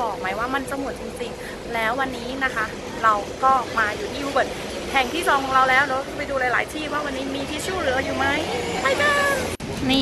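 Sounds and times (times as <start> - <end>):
street traffic: 0.0 - 10.0
woman talking: 0.0 - 10.0.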